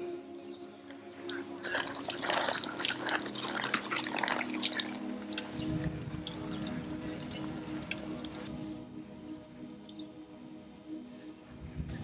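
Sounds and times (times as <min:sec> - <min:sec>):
watery clicks and drips: 0:01.6 - 0:07.0.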